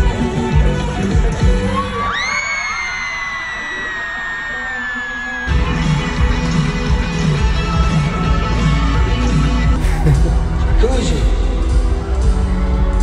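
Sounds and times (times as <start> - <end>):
live pop concert music: 0.0 - 13.0.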